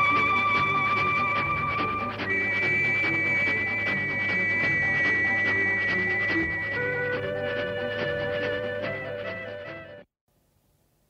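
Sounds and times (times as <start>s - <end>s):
high held notes: 0.0s - 8.9s.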